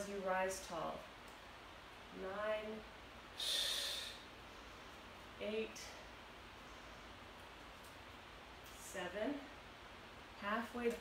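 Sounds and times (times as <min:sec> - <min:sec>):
woman's sharp breath: 0:03.4 - 0:04.3.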